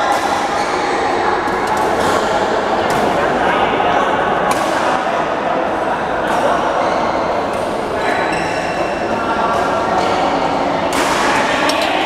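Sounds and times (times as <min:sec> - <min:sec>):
busy indoor sports hall din: 0:00.0 - 0:12.0
racket hitting shuttlecock: 0:10.9 - 0:12.0.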